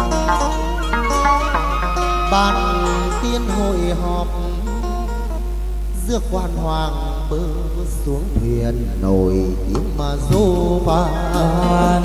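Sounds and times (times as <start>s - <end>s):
moon lute playing: 0.0s - 6.0s, 10.0s - 12.0s
person singing long bending notes: 0.0s - 12.0s.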